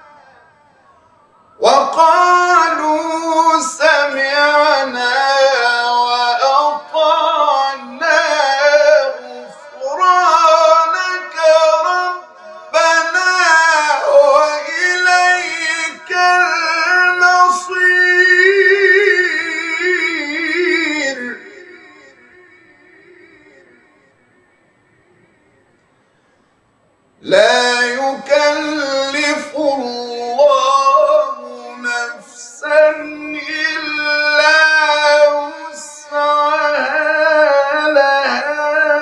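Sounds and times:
man chanting recitation: 0.0s - 25.7s, 27.2s - 39.0s.

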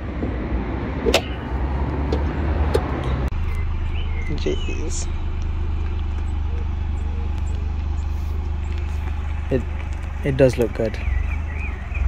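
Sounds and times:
car engine low drone: 0.0s - 12.0s.

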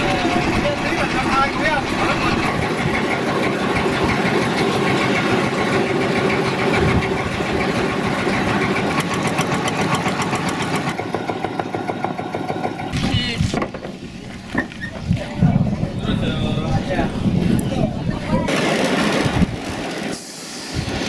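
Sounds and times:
boat motor running: 0.0s - 21.0s.

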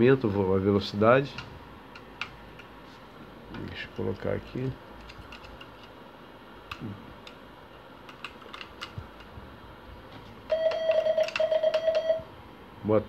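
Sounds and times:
morse code beeps: 10.5s - 12.3s
telegraph key clicks: 10.7s - 11.9s.

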